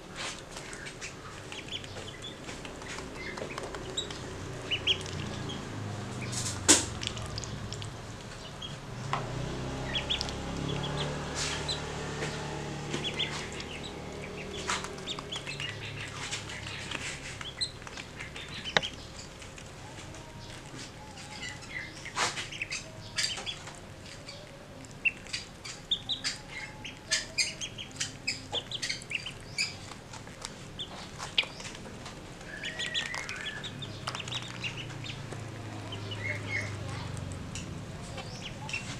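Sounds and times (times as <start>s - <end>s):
ducklings pecking grain taps: 0.0s - 38.9s
ducklings peeping: 0.0s - 38.9s.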